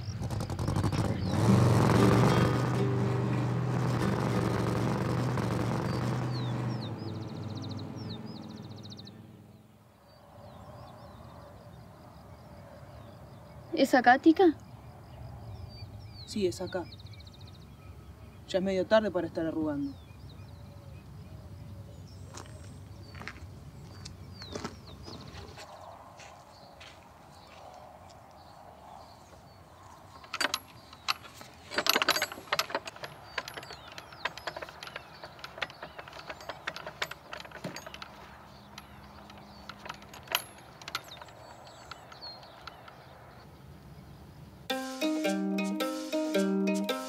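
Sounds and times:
wooden gate latch rattling: 30.2 - 43.1.

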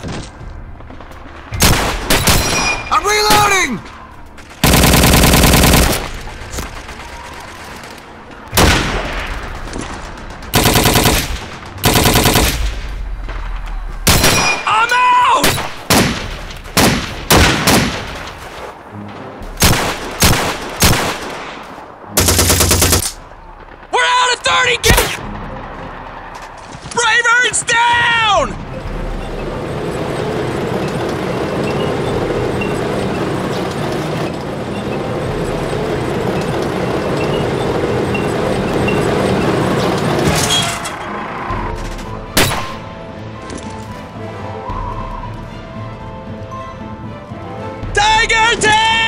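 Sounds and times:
rifle shots: 4.6 - 7.1, 10.2 - 12.8, 19.6 - 23.8
machine-gun bursts: 4.6 - 7.9, 10.5 - 12.6, 22.2 - 23.2.

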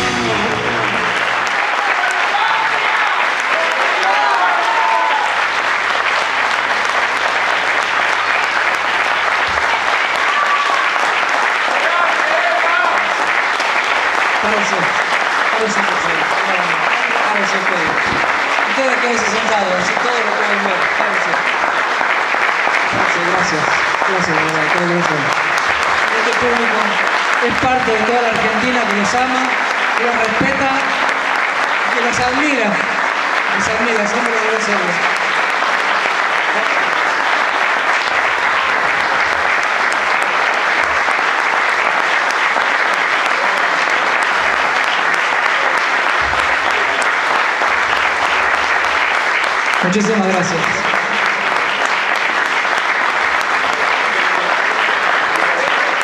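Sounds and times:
crowd applauding: 0.0 - 56.0.

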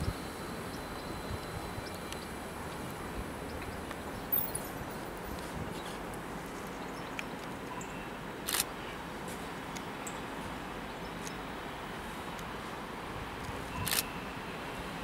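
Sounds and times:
faint high steady tone: 0.0 - 5.5
tram humming at a stop: 0.0 - 15.0.

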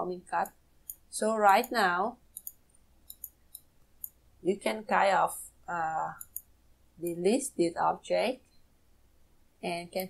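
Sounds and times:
computer mouse clicks: 0.4 - 4.2, 6.2 - 6.5.

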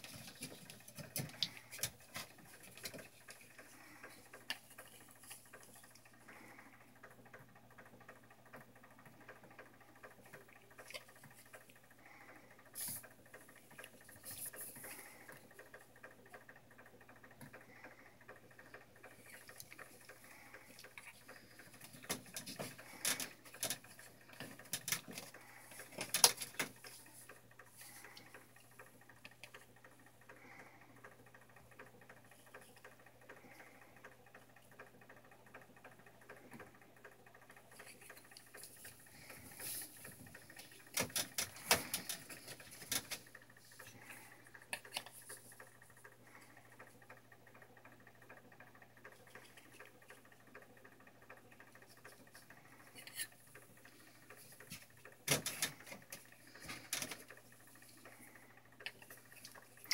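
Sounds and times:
eggs clicking in plastic tray: 0.0 - 57.5.

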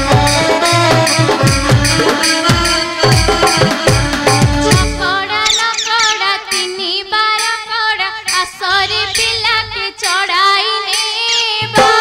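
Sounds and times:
drums: 0.0 - 5.4, 6.5 - 12.0
girl singing folk song: 3.3 - 12.0.

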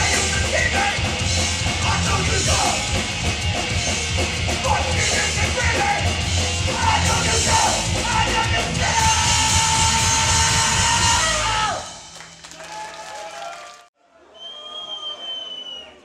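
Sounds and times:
hardcore punk band playing live: 0.0 - 12.2
crowd yelling and cheering: 0.0 - 16.0.

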